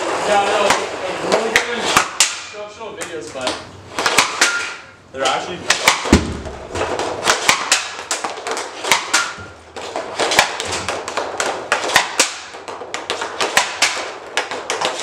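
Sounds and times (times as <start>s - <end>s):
hockey sticks shooting pucks: 0.0s - 15.0s
pucks hitting goal: 0.0s - 15.0s.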